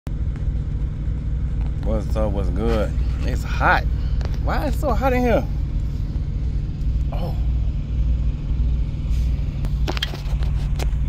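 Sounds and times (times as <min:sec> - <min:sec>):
diesel truck engine rumble: 0:00.1 - 0:11.0.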